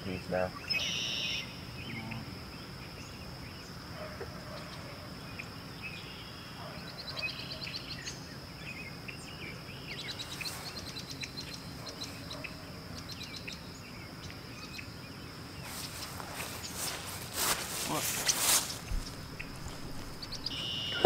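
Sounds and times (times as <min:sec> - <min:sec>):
birds chirping and trilling: 0:00.0 - 0:03.8, 0:04.5 - 0:21.0.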